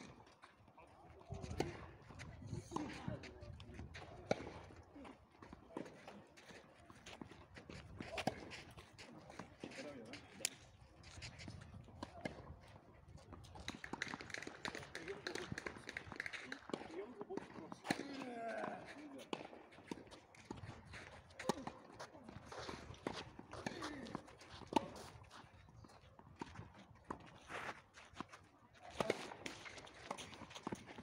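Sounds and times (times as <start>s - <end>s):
footsteps shuffling on clay court: 0.0s - 31.0s.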